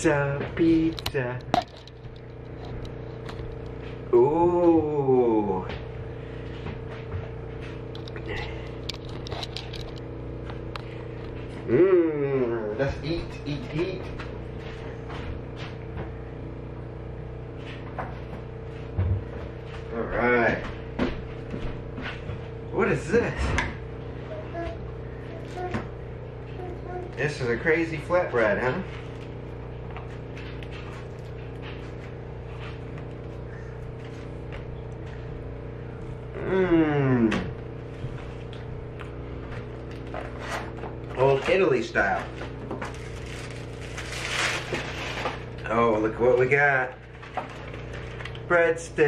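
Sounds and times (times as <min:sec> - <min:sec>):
steady background hum: 0:00.0 - 0:49.0.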